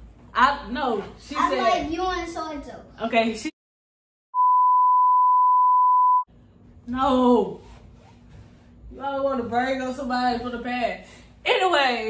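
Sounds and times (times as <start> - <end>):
censor beep tone: 4.4 - 6.3.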